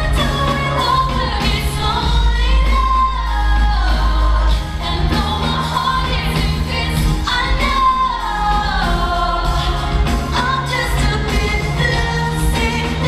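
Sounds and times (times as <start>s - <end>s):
amplified band with bass: 0.0s - 13.0s
woman singing into microphone: 0.0s - 13.0s.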